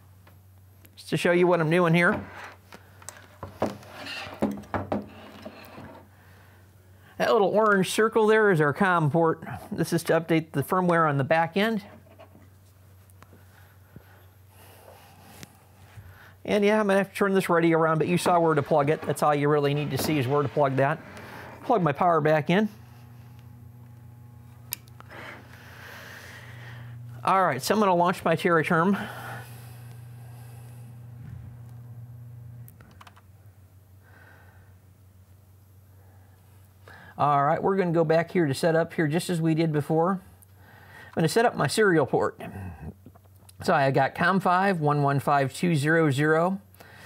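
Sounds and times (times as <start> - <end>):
low electrical hum: 0.0 - 47.0
rustling of hands and cables: 2.2 - 6.1.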